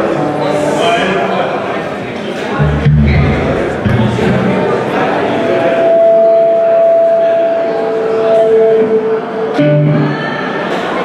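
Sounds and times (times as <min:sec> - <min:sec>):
electric guitar feedback tone: 0:02.5 - 0:10.4.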